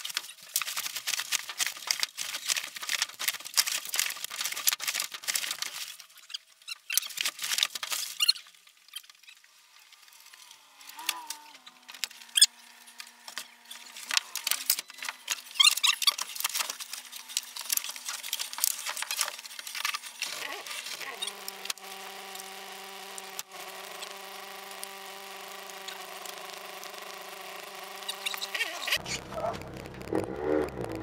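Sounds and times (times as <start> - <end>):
clicks rattles and squeaks: 0.0 - 9.5, 11.0 - 23.2, 27.9 - 30.1
car engine idling: 25.3 - 31.0.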